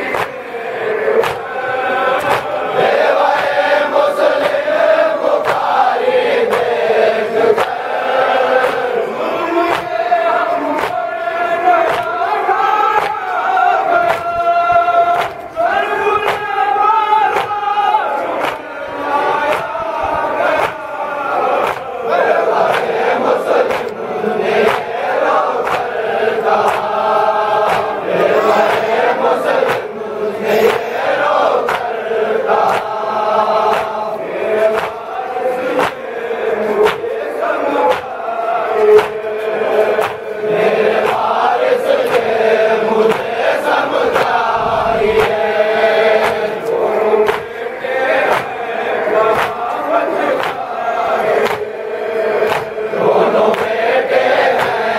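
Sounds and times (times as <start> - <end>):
chest-beating slaps: 0.0 - 0.5, 1.2 - 1.6, 2.2 - 2.7, 4.3 - 4.6, 5.4 - 5.8, 6.4 - 6.8, 7.5 - 7.8, 10.8 - 11.1, 11.8 - 12.2, 13.0 - 13.3, 14.0 - 15.6, 16.2 - 16.5, 17.3 - 17.6, 18.4 - 18.7, 19.5 - 19.8, 20.5 - 20.8, 21.6 - 22.0, 22.6 - 23.0, 23.6 - 24.0, 24.6 - 24.9, 25.6 - 26.0, 26.6 - 33.1, 33.7 - 35.1, 35.8 - 36.1, 36.8 - 37.1, 37.9 - 38.2, 38.8 - 40.3, 44.1 - 47.6, 48.2 - 48.6, 49.3 - 49.7, 50.4 - 50.7, 51.4 - 51.7, 52.4 - 52.8, 53.5 - 54.9
men chanting in unison: 0.0 - 54.9.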